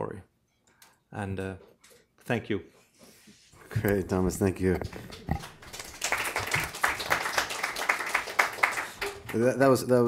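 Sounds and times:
audience applauding: 4.5 - 9.6.

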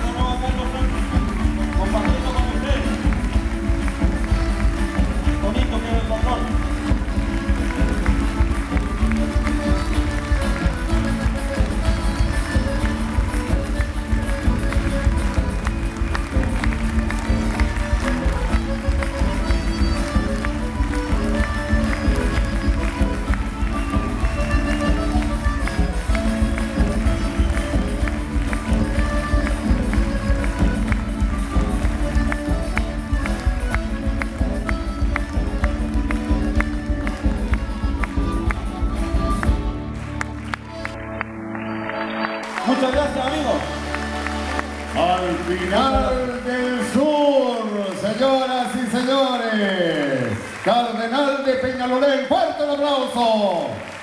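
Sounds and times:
folk band playing dance tune: 0.0 - 54.0.

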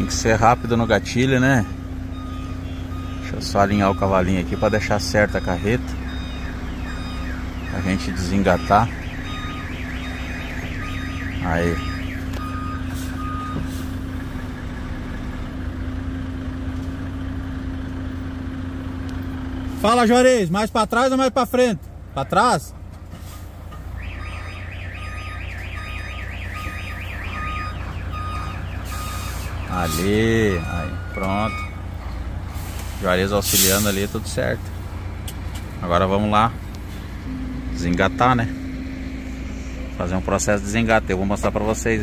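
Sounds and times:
truck reverse alarm warbling: 0.0 - 15.7, 23.9 - 34.2, 37.2 - 41.9
truck engine humming: 0.0 - 42.0.

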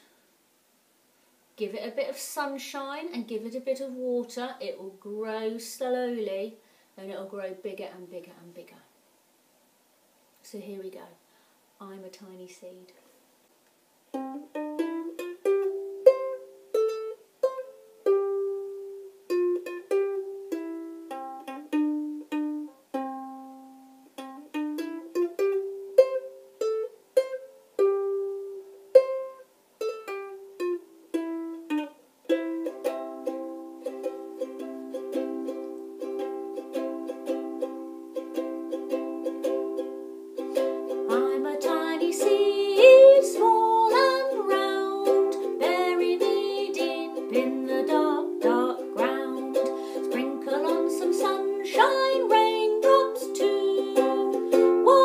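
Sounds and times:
ukulele playing: 14.1 - 55.0.

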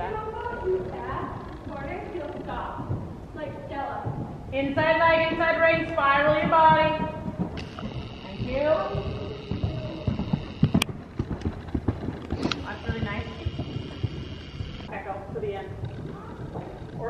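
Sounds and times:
horse hoofbeats on soft dirt: 0.0 - 17.0
sharp hoof clicks: 0.0 - 17.0.

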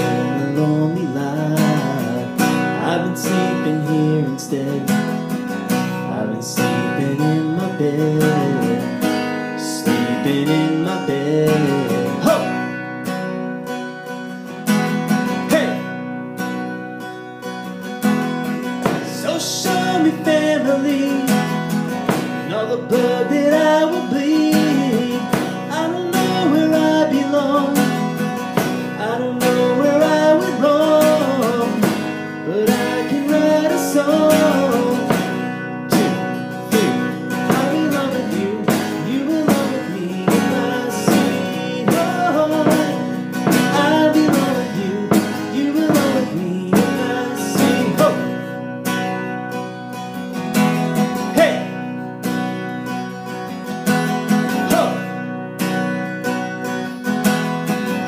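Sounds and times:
man singing with reverb: 0.0 - 12.8, 15.4 - 15.9, 18.9 - 48.6, 51.2 - 51.8, 54.6 - 55.1
acoustic guitar strumming: 0.0 - 58.0.

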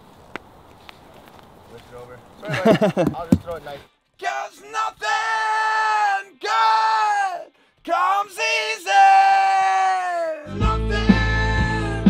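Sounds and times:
rock band with bass and drums: 10.5 - 12.0.

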